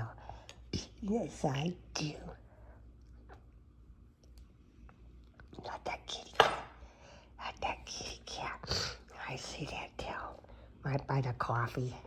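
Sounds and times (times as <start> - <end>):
woman whispering baby-talk: 7.4 - 12.0.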